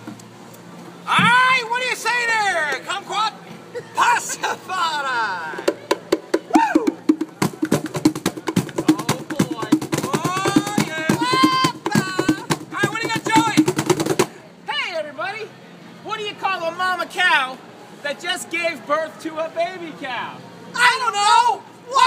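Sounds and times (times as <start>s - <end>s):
voices: 0.5s - 22.0s
cajons played by hand: 5.5s - 14.4s.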